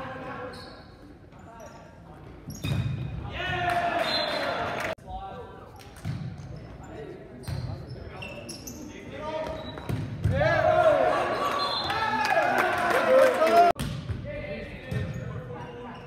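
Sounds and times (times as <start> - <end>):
crowd shouting and cheering: 10.3 - 13.8.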